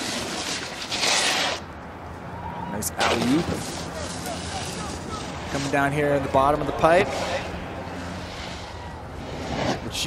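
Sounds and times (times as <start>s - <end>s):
snowboard edge scraping snow: 0.0s - 1.7s, 3.0s - 5.9s, 8.2s - 10.0s.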